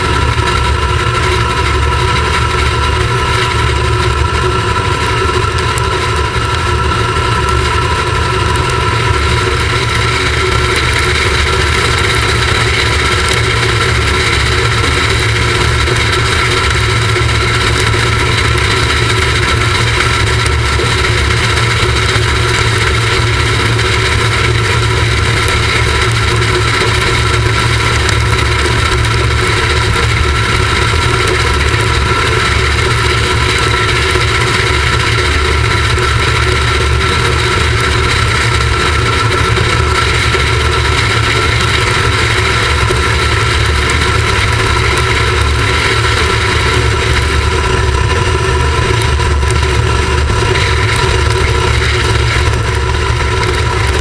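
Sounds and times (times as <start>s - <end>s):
deep rumble: 0.0s - 54.0s.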